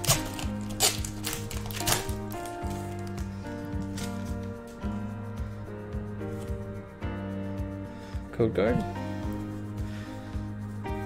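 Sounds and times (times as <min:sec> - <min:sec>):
foil wrapper crinkling and tearing: 0:00.0 - 0:04.6
background music: 0:00.0 - 0:11.0.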